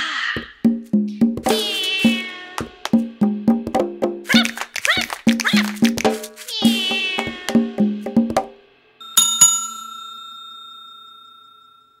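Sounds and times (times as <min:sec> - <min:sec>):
bell-like chime ringing: 0:09.0 - 0:12.0.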